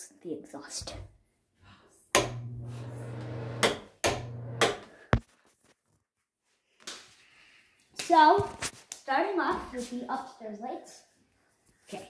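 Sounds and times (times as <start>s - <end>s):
wall switch click: 2.2s - 2.5s, 3.6s - 4.8s
exhaust fan motor hum: 2.2s - 4.8s.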